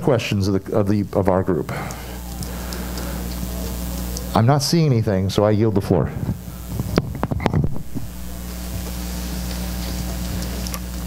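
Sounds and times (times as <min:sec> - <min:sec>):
low electrical hum: 0:00.0 - 0:11.0
steady hiss: 0:00.0 - 0:11.0.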